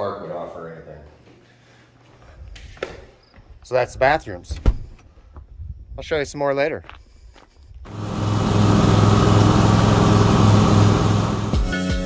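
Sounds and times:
engine running with deep hum: 7.9s - 11.6s
music: 11.5s - 12.0s.

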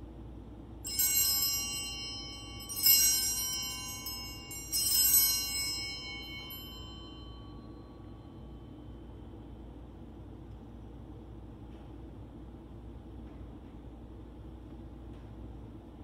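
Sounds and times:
altar bells ringing: 0.8s - 9.1s.

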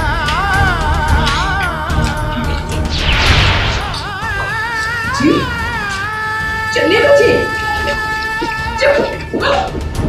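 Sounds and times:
dramatic background music: 0.0s - 10.0s
voice sobbing: 4.2s - 9.8s.

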